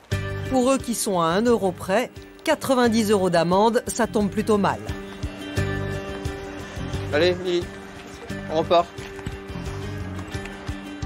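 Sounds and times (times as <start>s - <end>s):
music of held tones: 3.0s - 11.0s.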